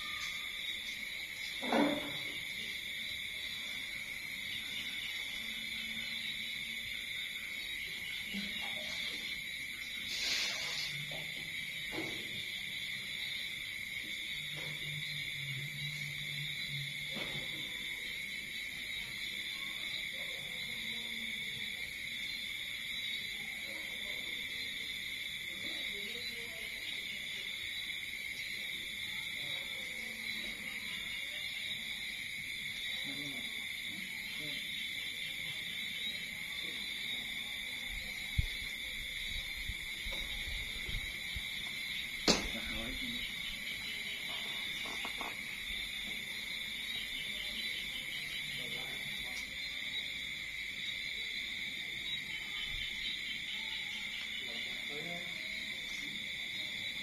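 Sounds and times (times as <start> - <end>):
crickets trilling: 0.0 - 57.0.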